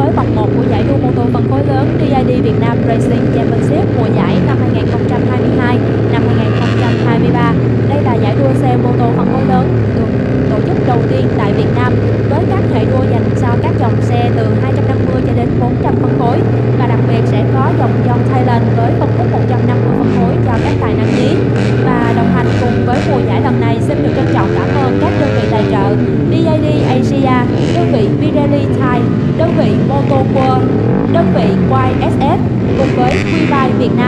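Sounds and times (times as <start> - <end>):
motorcycle engine idling and revving: 0.0 - 34.0
other motorcycle engines running: 0.0 - 34.0.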